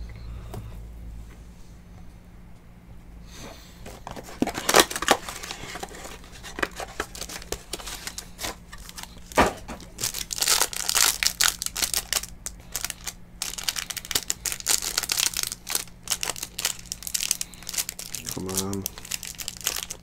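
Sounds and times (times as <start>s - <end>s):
plastic card sleeves crinkling: 3.8s - 20.0s.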